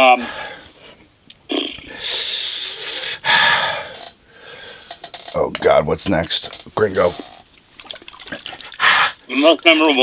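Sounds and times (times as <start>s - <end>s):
man breathing hard and sniffing: 1.8s - 5.0s.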